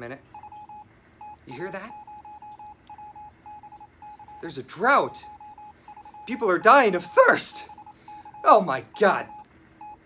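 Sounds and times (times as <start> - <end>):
electronic beeping: 0.3 - 10.0.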